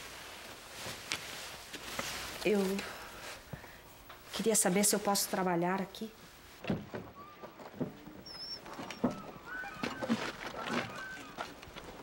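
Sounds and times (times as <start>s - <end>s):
horse hooves clopping: 7.2s - 12.0s.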